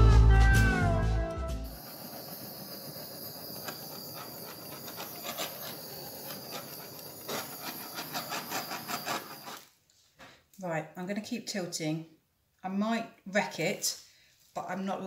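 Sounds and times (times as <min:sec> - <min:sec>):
background music: 0:00.0 - 0:01.7
blowtorch hissing: 0:01.7 - 0:09.7.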